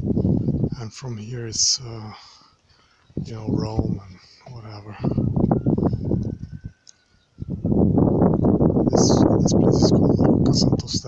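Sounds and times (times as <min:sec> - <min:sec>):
gusty wind buffeting microphone: 0:00.0 - 0:02.2, 0:03.0 - 0:11.0.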